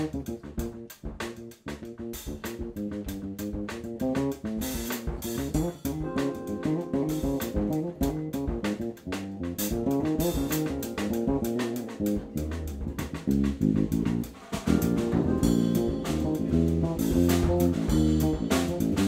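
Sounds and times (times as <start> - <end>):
bass line: 0.0 - 19.0
drum kit groove: 0.0 - 19.0
keyboard chords: 2.0 - 19.0.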